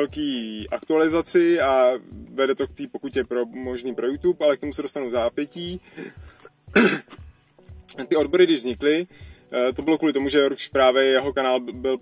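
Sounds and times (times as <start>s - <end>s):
man coughing: 6.7s - 7.2s.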